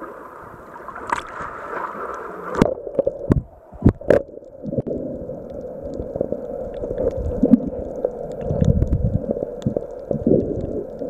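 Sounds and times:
muffled underwater sound: 0.0 - 11.0
water splashing: 0.0 - 11.0.

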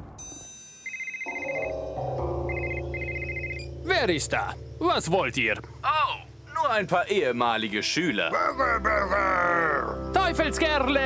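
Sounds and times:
telephone ringing electronic trill: 0.2 - 3.8
background music sustained notes: 1.3 - 11.0.

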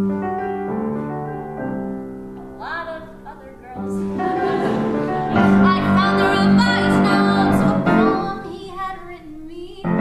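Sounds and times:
piano accompaniment: 0.0 - 10.0
woman singing: 5.6 - 10.0.

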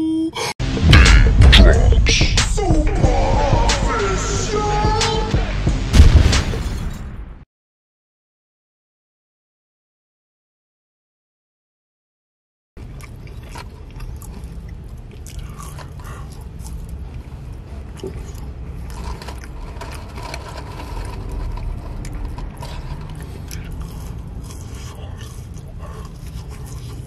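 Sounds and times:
steady low rumble: 0.6 - 6.3, 12.8 - 27.0
chewing and biting fries: 12.8 - 27.0
heavy breathing: 15.3 - 18.7, 22.4 - 27.0.

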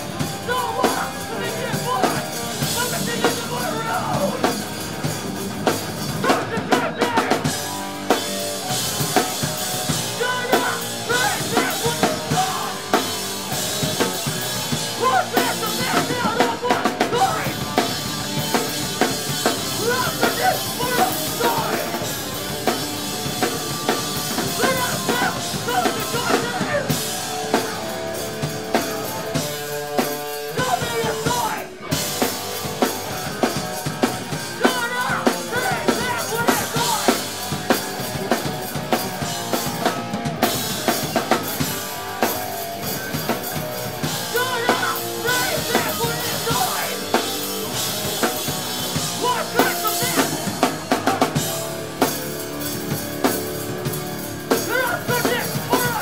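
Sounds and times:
hardcore punk band playing live: 0.0 - 56.0.

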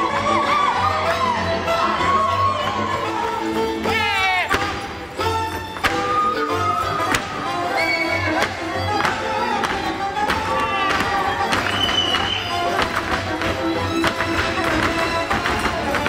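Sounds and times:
fiddle melody: 0.0 - 16.0
shoes tapping and stamping on floor: 5.7 - 6.2, 7.0 - 7.5, 8.3 - 16.0.

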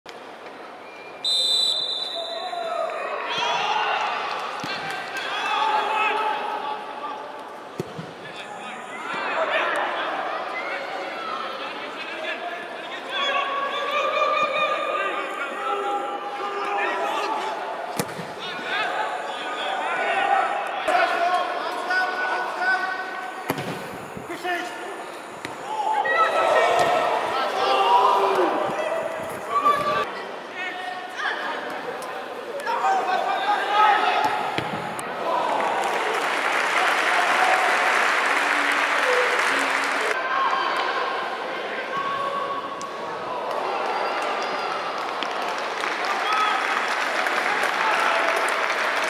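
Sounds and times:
referee's whistle blast: 1.2 - 2.6
players shouting: 13.0 - 30.1.

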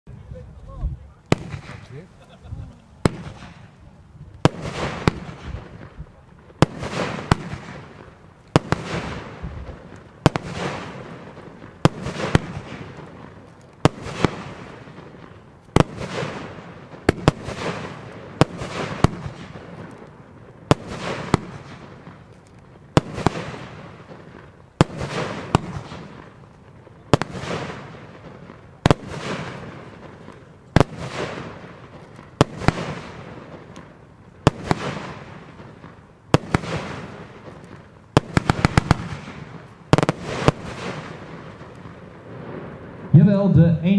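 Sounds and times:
firework bangs: 1.2 - 43.9.

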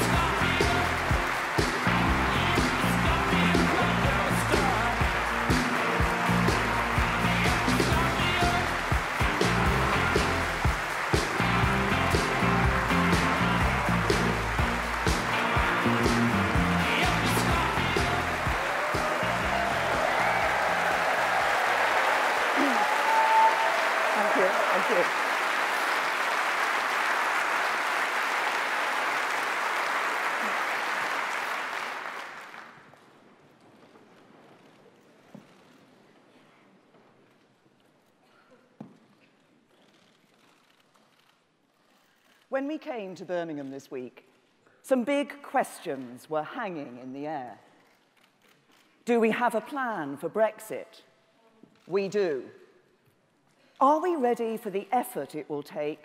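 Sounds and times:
walk-on music with a beat: 0.0 - 21.0
audience applauding and cheering: 0.0 - 33.3.

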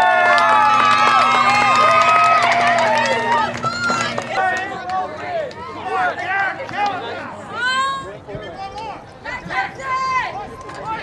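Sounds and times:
spectators cheering and shouting: 0.0 - 11.0
voices calling out: 0.0 - 11.0.

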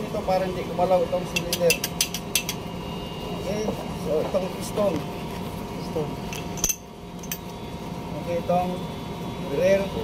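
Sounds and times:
metallic clink of steel parts: 6.3 - 7.5.

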